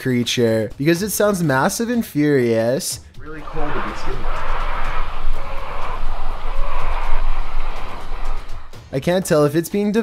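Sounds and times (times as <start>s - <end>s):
animal harsh screaming: 3.3s - 8.8s.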